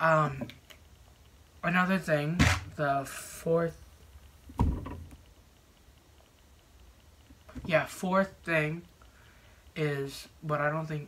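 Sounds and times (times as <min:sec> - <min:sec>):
dull low thump: 0:04.5 - 0:05.1.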